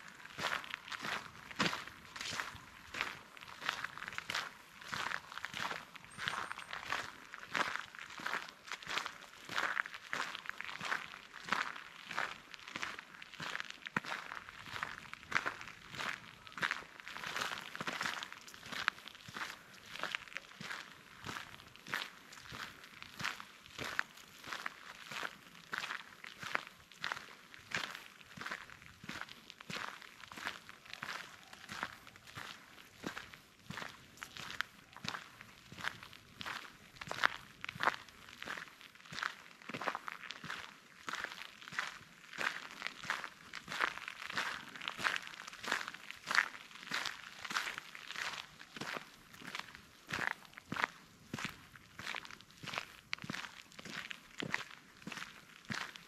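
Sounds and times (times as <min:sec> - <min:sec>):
footsteps crunching on gravel: 0:00.0 - 0:56.0.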